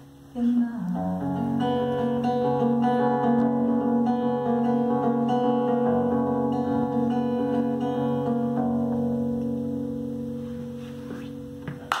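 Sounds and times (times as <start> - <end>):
acoustic guitar chords ringing: 0.0 - 12.0.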